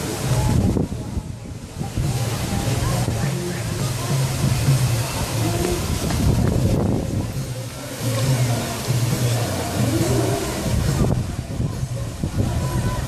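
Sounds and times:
outdoor noise: 0:00.0 - 0:13.0.

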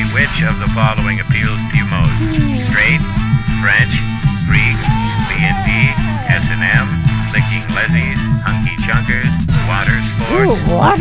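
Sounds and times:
looping bass line: 0:00.0 - 0:11.0.

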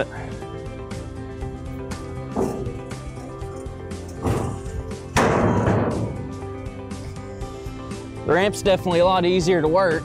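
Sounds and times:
background music: 0:00.0 - 0:10.0
metal ramp knocking down: 0:02.3 - 0:06.4
heavy metal impact ringing: 0:04.1 - 0:06.4.

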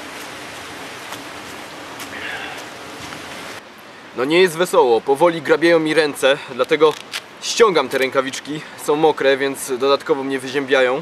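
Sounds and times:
footsteps on wet moss and leaves: 0:00.0 - 0:03.6, 0:06.5 - 0:08.4
running water hiss: 0:00.0 - 0:11.0.

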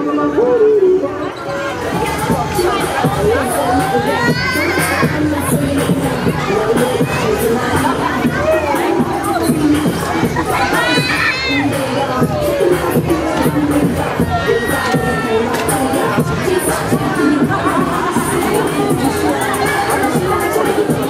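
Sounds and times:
riders screaming and shouting: 0:01.3 - 0:09.5, 0:10.1 - 0:12.8, 0:13.4 - 0:15.7.

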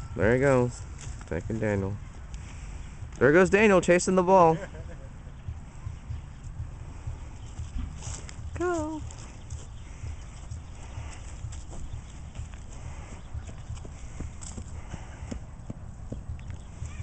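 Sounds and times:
footsteps on grass and dry leaves: 0:00.5 - 0:03.6, 0:06.2 - 0:17.0.

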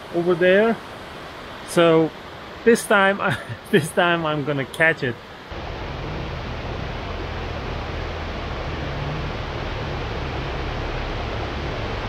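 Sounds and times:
river and waterfall rushing: 0:00.0 - 0:12.0.

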